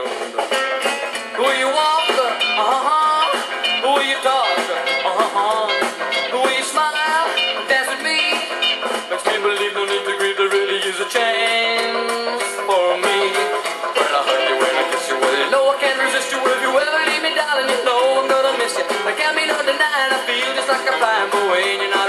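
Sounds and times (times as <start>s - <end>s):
drums: 0.0s - 22.0s
electric guitars: 0.0s - 22.0s.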